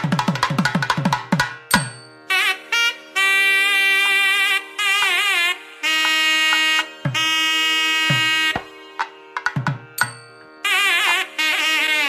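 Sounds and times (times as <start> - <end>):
nadaswaram playing wedding music: 0.0 - 12.0.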